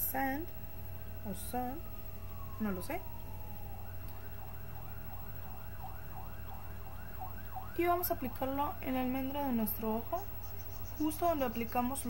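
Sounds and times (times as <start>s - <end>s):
steady low hum: 0.0s - 12.0s
siren wailing and yelping: 1.6s - 11.8s.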